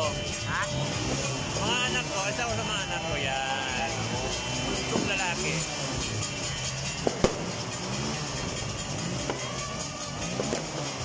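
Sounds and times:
music: 0:00.0 - 0:11.0
firecracker pops: 0:07.0 - 0:07.7.

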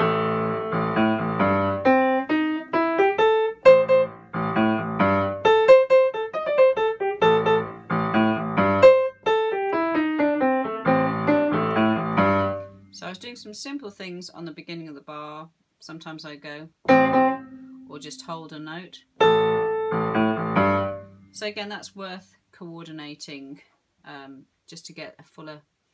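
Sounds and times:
jazz blues piano: 0:00.0 - 0:12.8, 0:16.9 - 0:18.3, 0:19.2 - 0:21.3.

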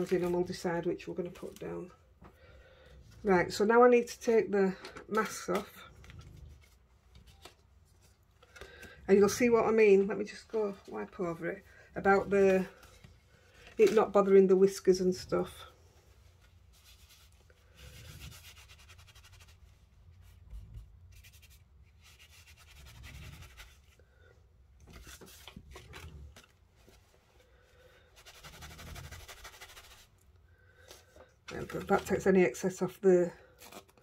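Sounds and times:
towel rubbing over paper card: 0:16.4 - 0:24.0, 0:28.2 - 0:30.1.

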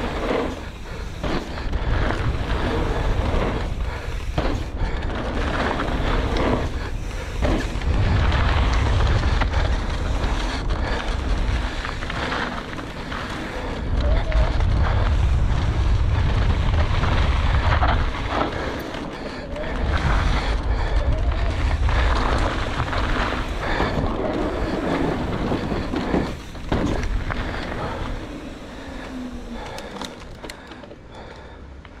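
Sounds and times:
wind buffeting microphone: 0:00.0 - 0:30.4
tyres rolling over gravel: 0:00.0 - 0:31.6
bike clicks and knocks: 0:00.0 - 0:32.0.

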